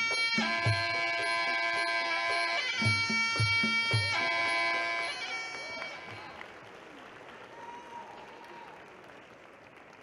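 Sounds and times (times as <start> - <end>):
crowd applauding: 4.8 - 10.0.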